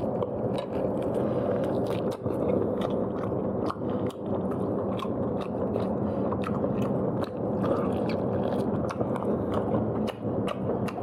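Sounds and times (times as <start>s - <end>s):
person chewing food: 0.0s - 11.0s
steady low hum: 0.0s - 11.0s.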